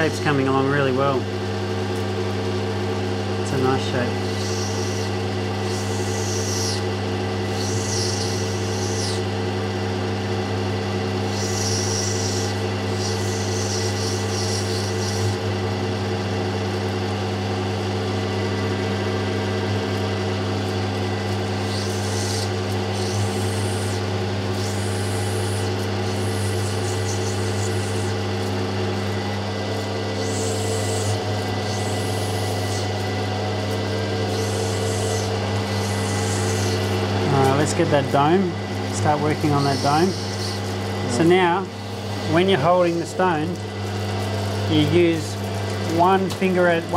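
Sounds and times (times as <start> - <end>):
machine motor humming: 0.0 - 46.9
stone grinding on wheel: 30.2 - 41.5.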